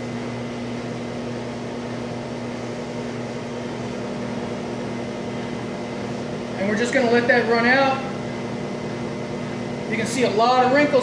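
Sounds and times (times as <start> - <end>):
machine mechanical hum: 0.0 - 11.0.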